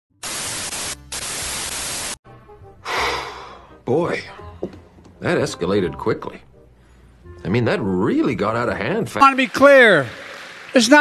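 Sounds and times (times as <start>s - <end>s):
television static hiss: 0.2s - 2.2s
faint music: 3.6s - 11.0s.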